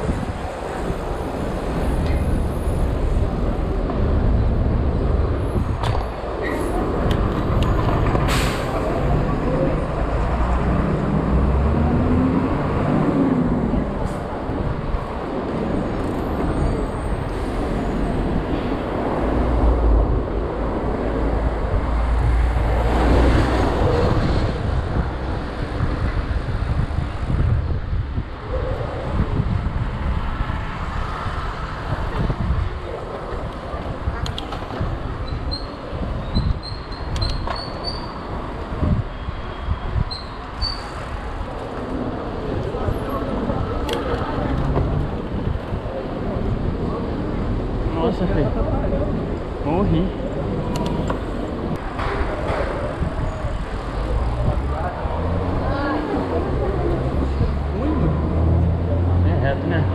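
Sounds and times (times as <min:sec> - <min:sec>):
cars passing: 0:00.0 - 0:59.9.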